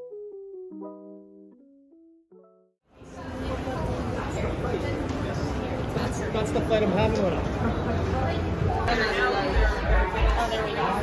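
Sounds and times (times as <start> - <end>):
soft piano melody: 0.0 - 2.7.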